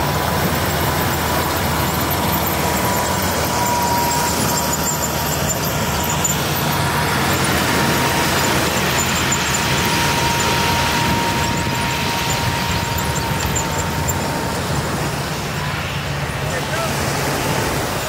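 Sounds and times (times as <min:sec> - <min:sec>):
thin high whine: 0:00.0 - 0:18.0
tractor engine running: 0:00.0 - 0:18.0.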